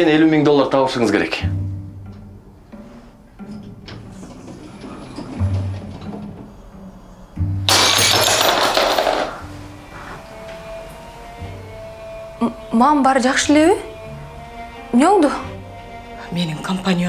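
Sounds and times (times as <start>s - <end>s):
background music with low bass: 0.0s - 17.0s
glass shattering on floor: 7.7s - 9.4s.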